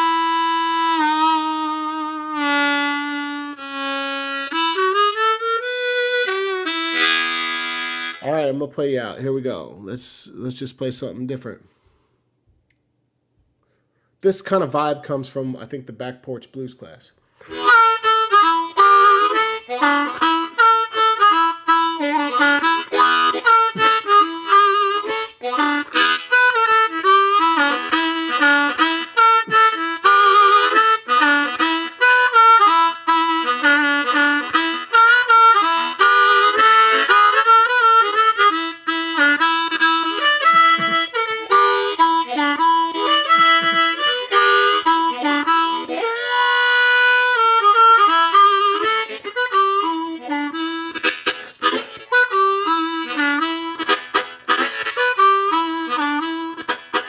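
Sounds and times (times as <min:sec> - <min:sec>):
blues harmonica solo: 0:00.0 - 0:08.6, 0:17.3 - 0:57.0.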